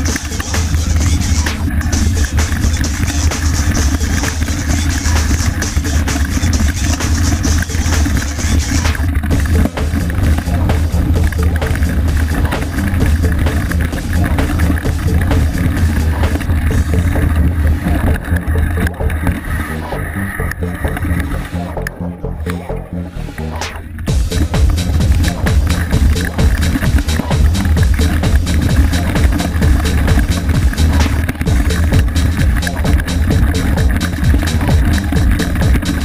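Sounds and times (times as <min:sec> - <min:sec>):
music: 0:00.0 - 0:36.0.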